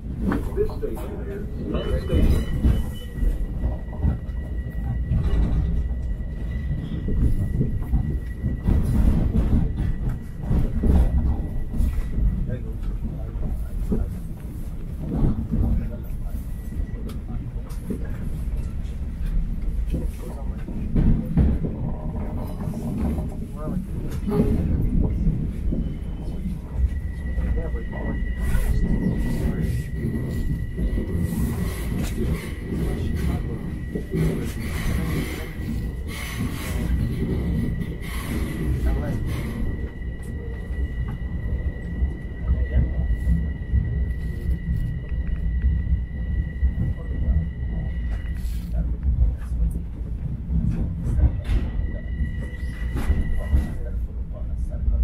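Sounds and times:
thin train whine: 0:00.0 - 0:55.0
train wheels rumbling on rails: 0:00.0 - 0:55.0.

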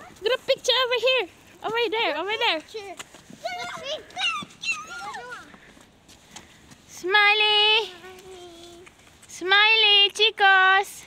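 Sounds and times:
young children calling out: 0:02.8 - 0:05.7.

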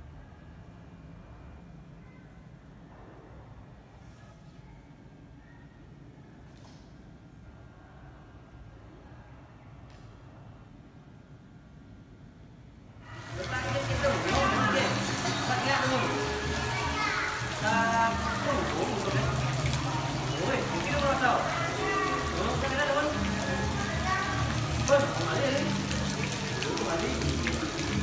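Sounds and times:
children chattering and calling: 0:13.1 - 0:28.0.

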